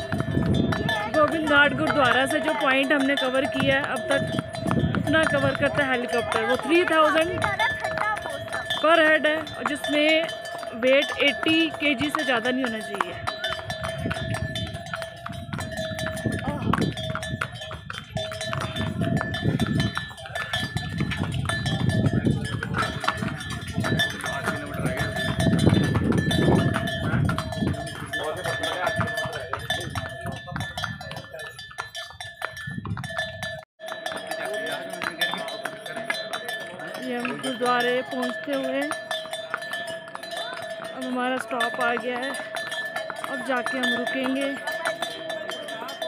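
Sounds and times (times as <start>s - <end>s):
wind rumble on microphone: 0.0s - 2.0s, 3.6s - 5.8s, 13.2s - 33.6s
harness bell ringing: 0.0s - 46.0s.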